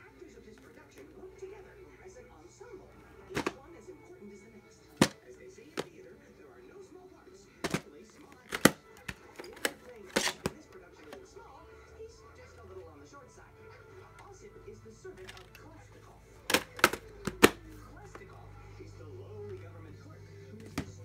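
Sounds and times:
faint television speech: 0.0s - 21.0s
television music: 0.0s - 21.0s
plastic case clicks and snaps: 3.3s - 3.6s, 5.0s - 5.2s, 7.6s - 11.2s, 16.4s - 17.7s.

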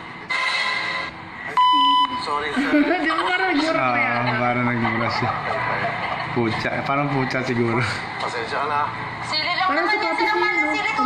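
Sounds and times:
electronic censor beep: 1.6s - 2.3s.

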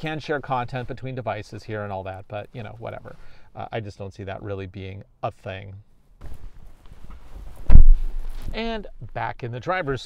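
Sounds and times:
clothing rustling against microphone: 0.0s - 3.3s, 6.2s - 10.0s
heavy low thump: 7.6s - 8.6s.

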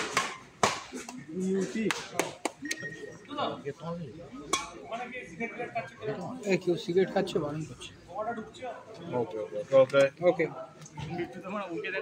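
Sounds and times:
badminton racquet hitting shuttlecock: 0.0s - 1.0s.

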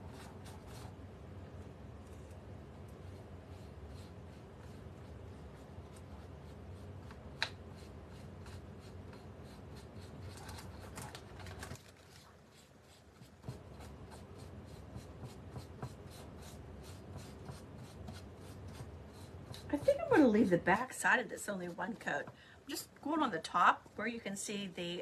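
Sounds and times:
paintbrush scraping on plastic: 2.0s - 22.2s.

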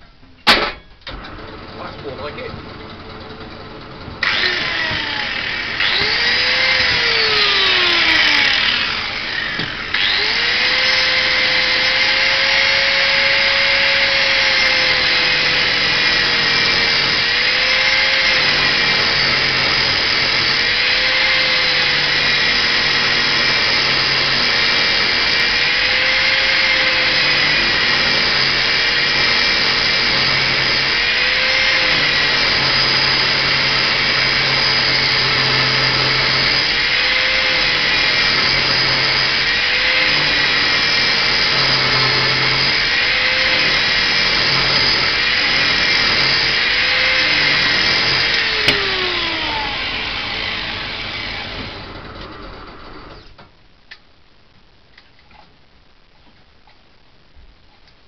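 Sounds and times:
drill motor running: 1.1s - 53.3s
angle grinder grinding rubber: 4.1s - 53.3s.

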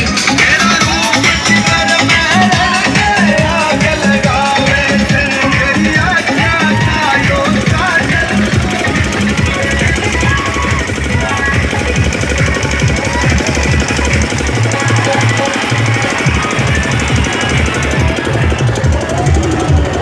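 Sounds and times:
loud dance music with bass: 0.0s - 20.0s.

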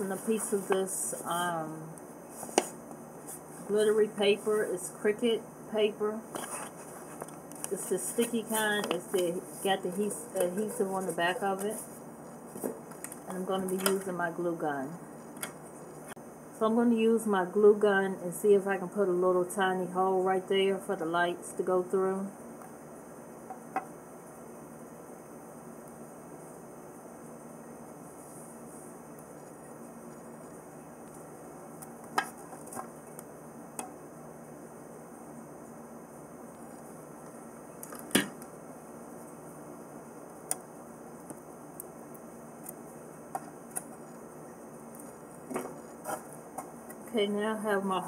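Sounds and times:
room hiss: 0.0s - 48.0s.

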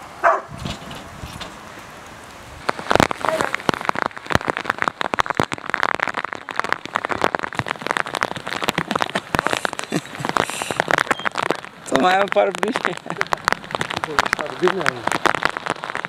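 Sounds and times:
rain tapping close to microphone: 0.0s - 16.0s.

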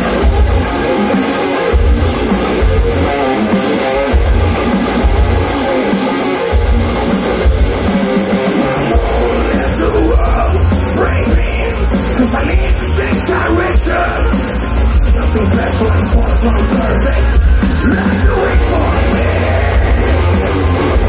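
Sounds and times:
bass guitar: 0.0s - 21.0s
distorted electric guitars: 0.0s - 21.0s
drums: 0.0s - 21.0s.

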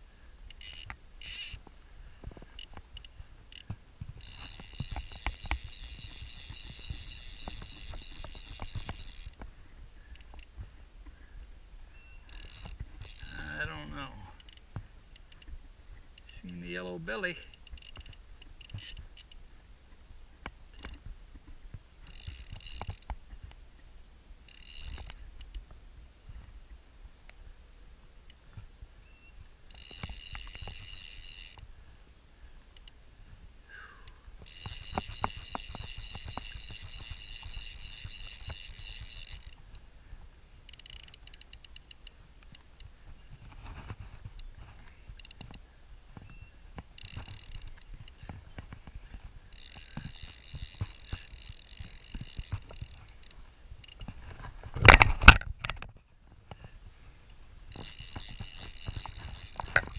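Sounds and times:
fly reel ratcheting: 0.0s - 59.9s.

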